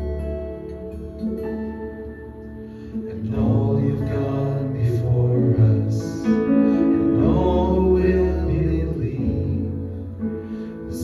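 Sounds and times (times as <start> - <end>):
worship band playing: 0.0 - 11.0.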